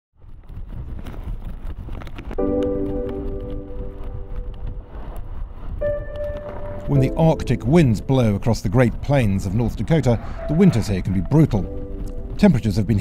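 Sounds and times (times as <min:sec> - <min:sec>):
wind buffeting microphone: 0:00.2 - 0:13.0
sustained musical tone: 0:02.4 - 0:05.0, 0:05.8 - 0:09.0, 0:10.4 - 0:13.0.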